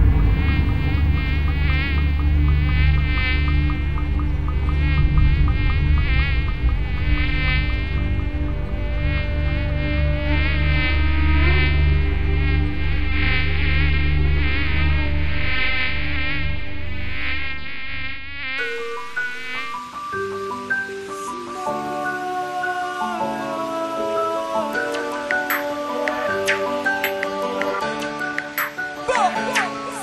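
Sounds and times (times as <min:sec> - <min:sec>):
deep low drone: 0:00.0 - 0:19.6
mosquito whine: 0:00.0 - 0:28.7.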